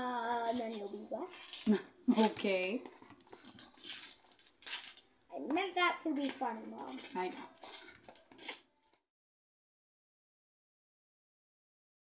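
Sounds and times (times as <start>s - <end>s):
spoon scraping plastic tub: 0.5s - 9.0s.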